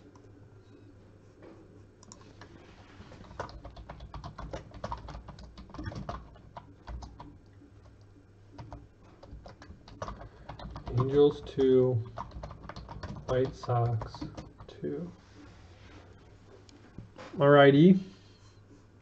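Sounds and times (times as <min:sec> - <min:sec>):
keyboard typing: 0:02.0 - 0:14.9.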